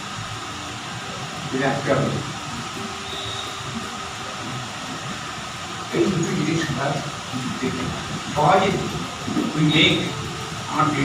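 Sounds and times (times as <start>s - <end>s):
air conditioning hum and hiss: 0.0s - 11.0s.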